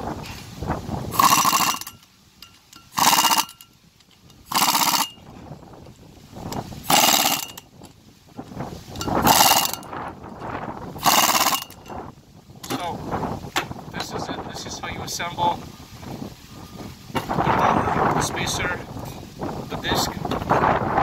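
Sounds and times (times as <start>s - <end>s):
impact wrench bursts: 1.1s - 3.8s, 4.4s - 5.3s, 6.8s - 7.8s, 9.0s - 9.9s, 11.0s - 12.0s.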